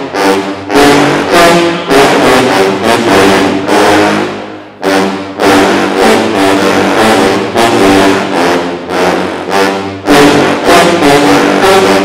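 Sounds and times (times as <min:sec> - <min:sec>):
sousaphone ensemble playing: 0:00.0 - 0:12.0.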